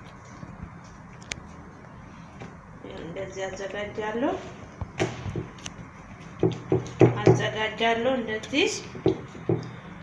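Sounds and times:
hands patting bread dough: 0:04.8 - 0:07.6.

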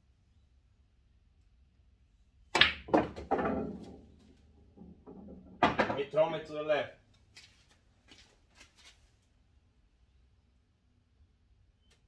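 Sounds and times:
pool balls clacking: 0:02.5 - 0:06.3
cue tip striking ball: 0:02.6 - 0:04.0
ball knocking into pocket: 0:02.6 - 0:04.1, 0:04.8 - 0:06.0
cue ball knocking off rail: 0:02.6 - 0:06.0.

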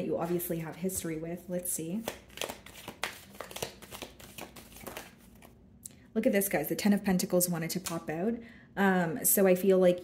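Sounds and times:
cards being shuffled by hand: 0:01.9 - 0:05.6.

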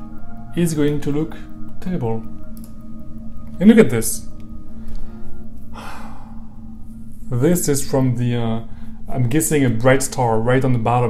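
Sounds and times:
man sighing: 0:05.7 - 0:06.6.

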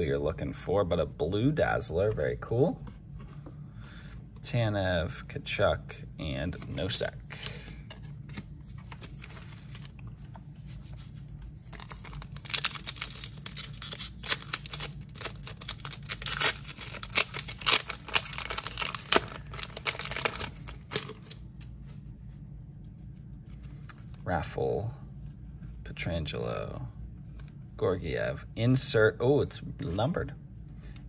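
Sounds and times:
plastic wrapper tearing and crinkling: 0:11.7 - 0:21.4.

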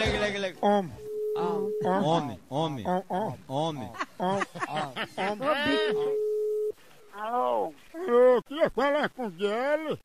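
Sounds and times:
telephone ringback tone: 0:01.0 - 0:02.1, 0:05.7 - 0:06.8.

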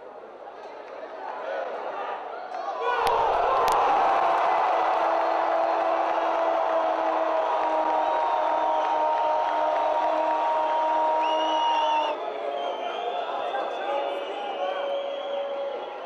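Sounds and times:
stadium crowd cheering: 0:00.9 - 0:16.0.

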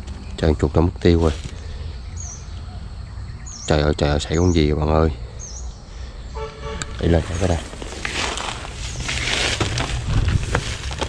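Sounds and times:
bird chirping: 0:01.5 - 0:09.3
horn-like beep: 0:06.4 - 0:07.2.

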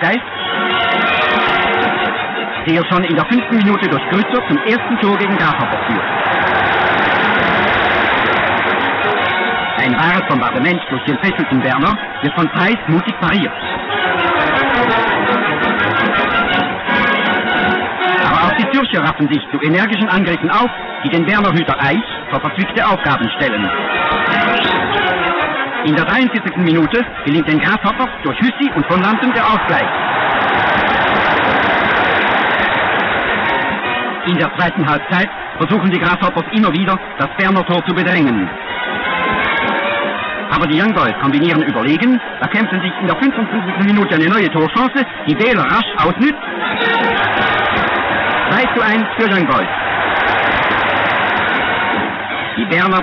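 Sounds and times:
stadium crowd cheering: 0:00.0 - 0:53.0.

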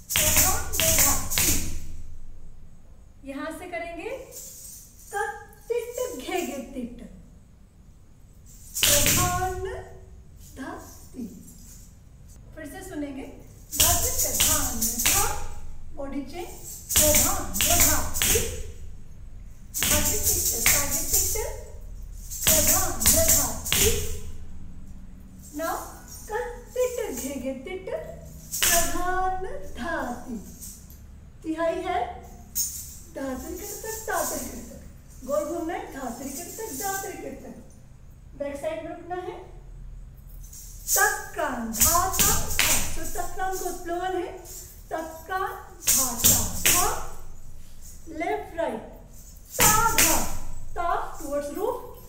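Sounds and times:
person speaking rhythmic syllables: 0:12.7 - 0:18.8, 0:19.8 - 0:21.7
ankle bells jingling: 0:13.4 - 0:31.2, 0:32.1 - 0:37.7, 0:40.2 - 0:52.0.

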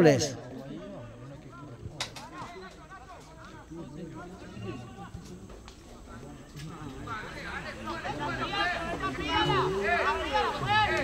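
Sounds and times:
distant players calling: 0:07.0 - 0:11.0.

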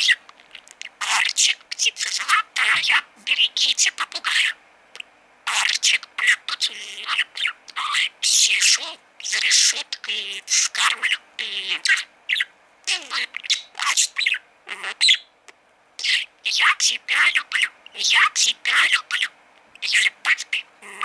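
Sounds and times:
budgerigar chattering and warbling: 0:00.8 - 0:04.6, 0:05.5 - 0:15.3, 0:16.0 - 0:21.0.

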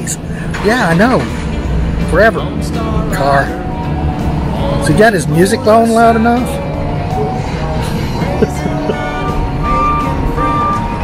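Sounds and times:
loud music from car stereo: 0:00.0 - 0:11.0
truck engine running: 0:00.0 - 0:11.0.

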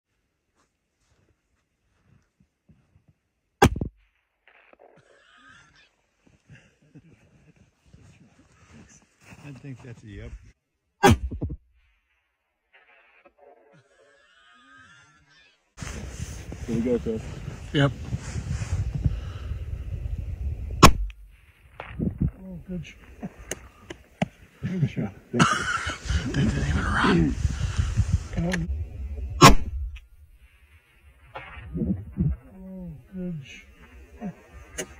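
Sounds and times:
faint rustling and handling noise: 0:15.8 - 0:19.0
low rumble on microphone: 0:15.8 - 0:23.4, 0:25.9 - 0:30.5, 0:31.2 - 0:34.5
rifle shot: 0:20.8 - 0:21.2, 0:29.4 - 0:29.9.

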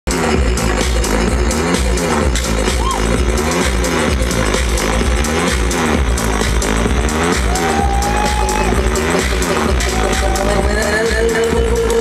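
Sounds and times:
repeating bass line: 0:00.0 - 0:12.0
electronic dance music: 0:00.1 - 0:12.0.

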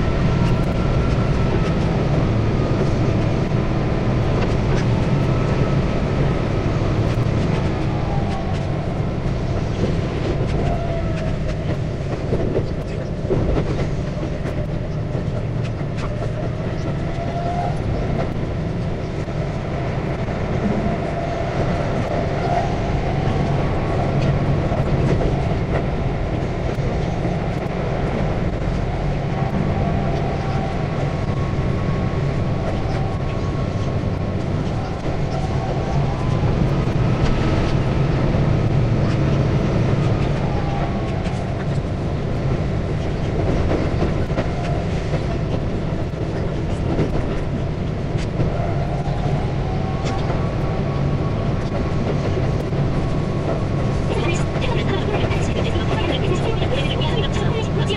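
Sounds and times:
train wheels rumbling on rail: 0:00.0 - 0:57.9.

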